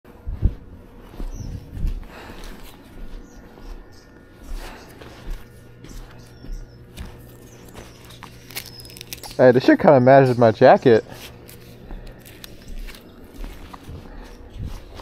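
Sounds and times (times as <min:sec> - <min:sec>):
faint low hum: 0:00.1 - 0:15.0
footsteps on asphalt: 0:00.2 - 0:08.4, 0:11.1 - 0:15.0.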